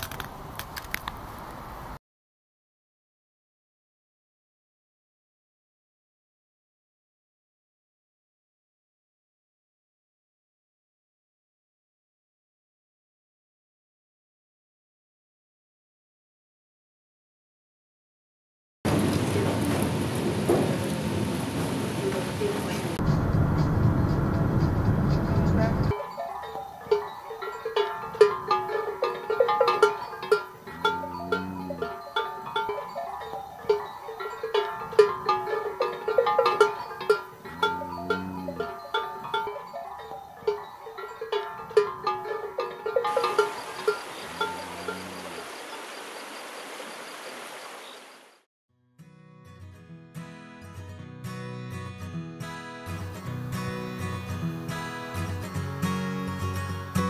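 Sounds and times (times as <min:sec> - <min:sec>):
cow bells clanking: 0:25.9 - 0:45.4
cows mooing: 0:28.5 - 0:33.0, 0:33.7 - 0:39.6, 0:41.3 - 0:45.6.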